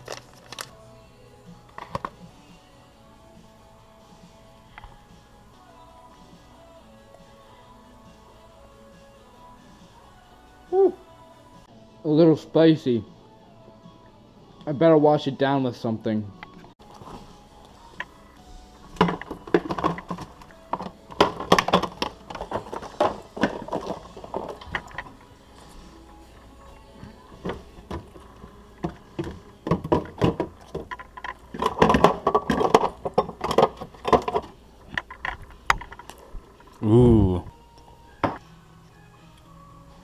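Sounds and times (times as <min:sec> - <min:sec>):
background music: 0:00.0 - 0:40.0
glass jars and bottles clinking: 0:19.0 - 0:25.2, 0:27.4 - 0:34.5.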